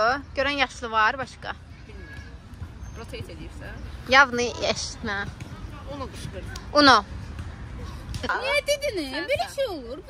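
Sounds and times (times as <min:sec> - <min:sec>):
low outdoor background noise: 0:00.0 - 0:10.0.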